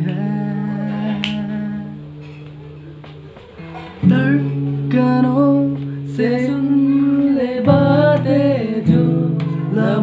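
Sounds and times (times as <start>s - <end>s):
finger snap: 0.0s - 1.7s
person singing: 0.0s - 2.3s, 3.8s - 10.0s
acoustic guitar: 0.0s - 10.0s.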